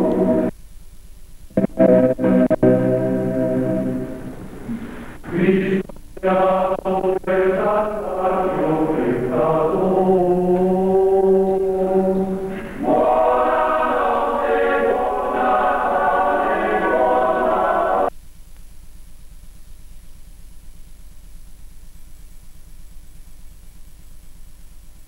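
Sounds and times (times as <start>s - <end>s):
faint tape hiss and hum: 0.0s - 25.0s
male choir singing a cappella: 5.2s - 18.1s.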